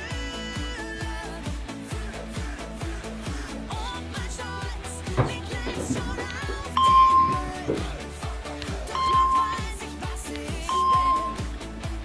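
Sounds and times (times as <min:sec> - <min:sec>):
upbeat pop music with singing: 0:00.0 - 0:12.0
short clear chime tones: 0:06.8 - 0:07.5, 0:09.0 - 0:09.7, 0:10.7 - 0:11.5.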